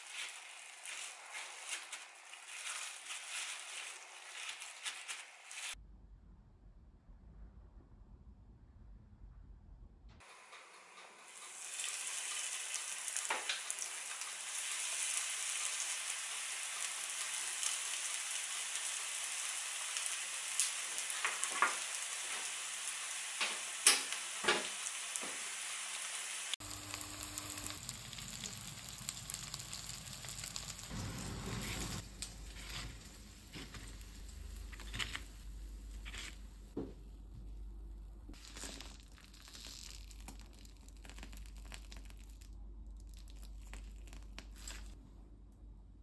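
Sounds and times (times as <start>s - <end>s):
fish sizzling in oil: 0.0s - 5.8s, 11.3s - 36.8s, 38.3s - 45.0s.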